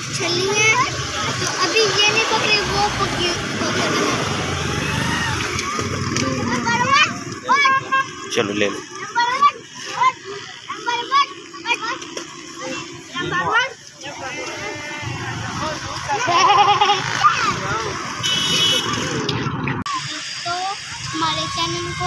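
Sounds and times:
children talking: 0.0 - 22.0
outdoor background noise: 0.0 - 22.0.

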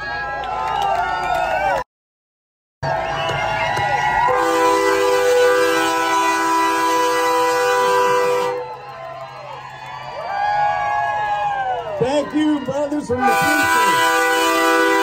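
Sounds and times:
crowd cheering and whooping: 0.0 - 1.8, 2.8 - 5.3, 7.6 - 15.0
truck air horn chord: 4.3 - 8.6, 13.2 - 15.0.

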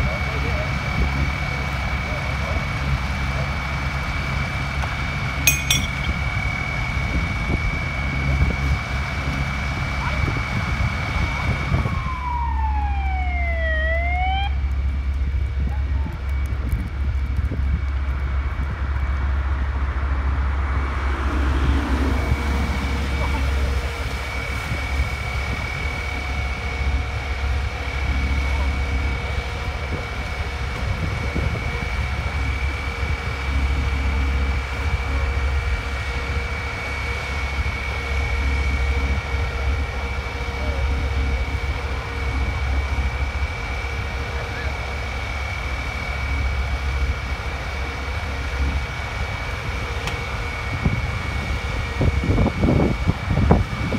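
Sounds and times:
diesel engines running: 0.0 - 53.9
high whine: 5.5 - 7.0
siren sweeping: 11.8 - 14.6.

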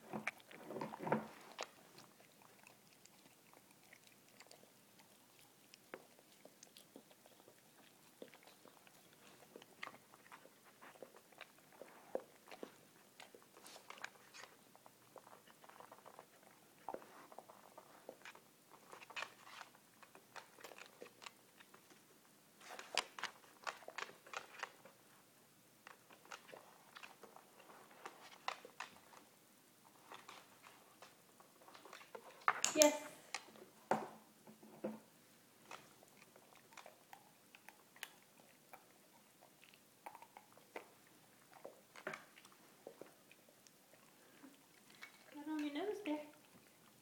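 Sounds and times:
dog chewing treats: 0.1 - 25.2, 25.8 - 29.3, 35.6 - 47.0.

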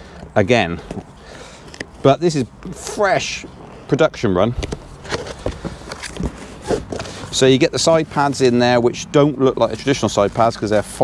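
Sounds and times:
hands rummaging through cardboard box: 4.6 - 8.5.

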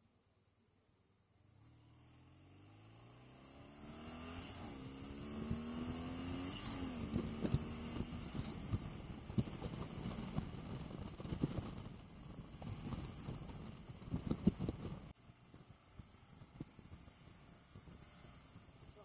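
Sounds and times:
motorcycle engine accelerating: 1.4 - 19.0
wind rush on microphone: 4.6 - 19.0
wind buffeting thumps: 5.2 - 17.1.

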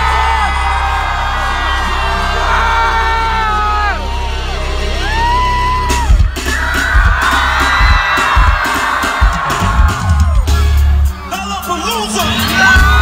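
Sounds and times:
crowd screaming and cheering: 0.0 - 13.0.

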